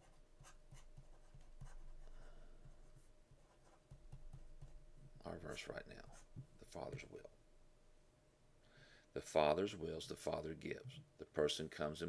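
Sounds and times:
stylus tapping and scratching on screen: 0.0s - 7.3s.

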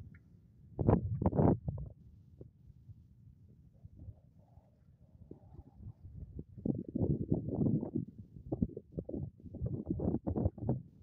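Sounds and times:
wind buffeting microphone: 0.8s - 1.9s, 5.3s - 11.0s.

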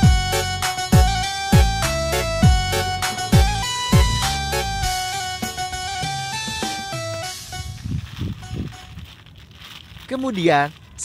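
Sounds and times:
low thumps: 1.0s - 8.7s
plastic wrap crinkling: 4.9s - 11.0s.

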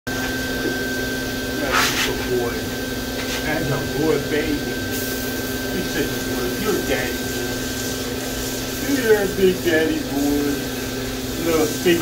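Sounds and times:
mechanical hum with high whine: 0.1s - 12.0s.

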